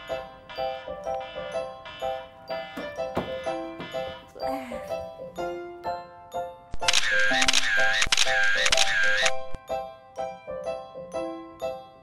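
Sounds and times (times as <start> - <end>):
light plucked background music: 0.0 - 12.0
camera shutter clicking rapidly: 6.8 - 9.4.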